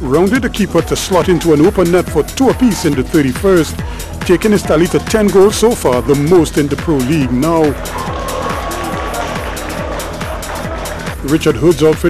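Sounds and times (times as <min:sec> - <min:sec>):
background music with driving beat: 0:00.0 - 0:12.0.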